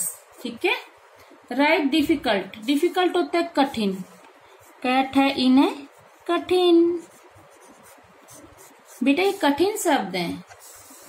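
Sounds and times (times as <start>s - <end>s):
pen scratching on paper: 2.6s - 11.0s.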